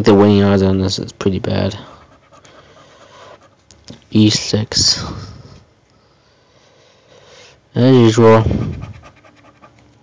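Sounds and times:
scratching lottery ticket: 1.8s - 3.7s, 8.2s - 10.0s.

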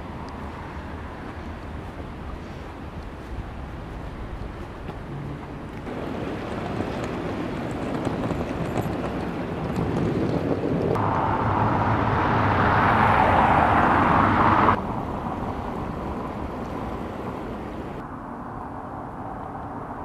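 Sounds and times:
outdoor rushing noise: 0.0s - 20.0s.

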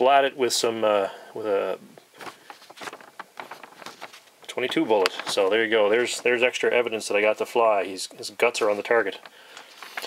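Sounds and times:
soft handling clicks and rustles: 2.1s - 6.5s, 8.5s - 10.0s.

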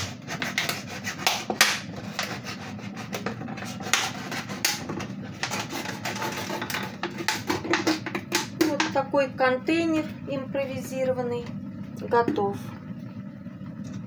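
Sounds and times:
blade cutting plastic bottle: 0.0s - 8.8s.

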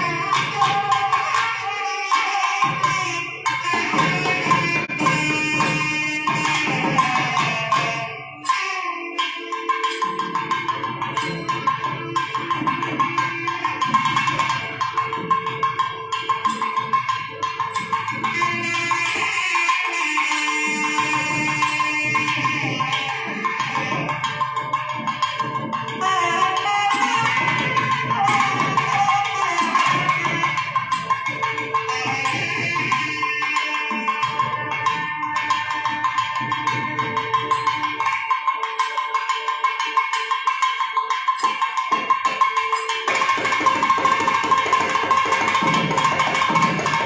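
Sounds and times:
nadaswaram melody: 0.0s - 47.0s
thavil drum strokes: 0.0s - 47.0s.

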